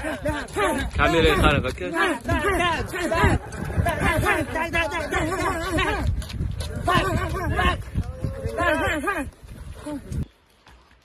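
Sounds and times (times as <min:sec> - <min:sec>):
men calling out: 0:00.0 - 0:10.1.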